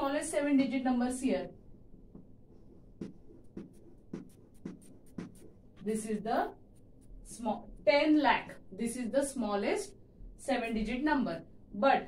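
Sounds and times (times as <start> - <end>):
chalk tapping on blackboard: 2.9 - 6.2.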